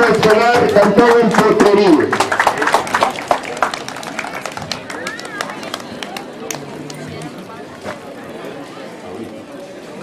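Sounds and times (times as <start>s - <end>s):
crowd clapping: 0.0s - 7.5s.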